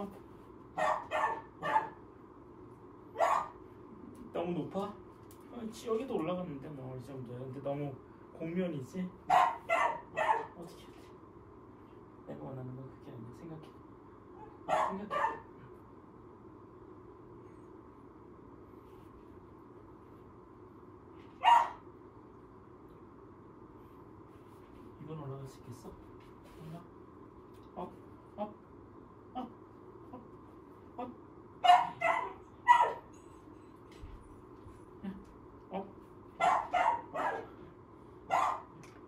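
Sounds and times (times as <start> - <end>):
puppy barking: 0.8 - 2.0, 3.2 - 3.6, 9.3 - 10.6, 14.4 - 15.5, 21.4 - 21.8, 31.6 - 33.2, 36.4 - 37.6, 38.3 - 38.8.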